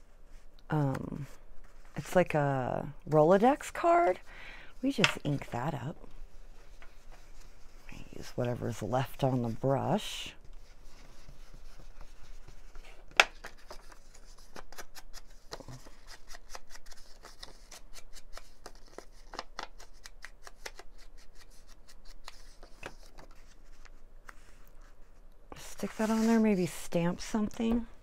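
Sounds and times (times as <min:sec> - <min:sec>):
brush rubbing on card: 0:25.8 - 0:26.7.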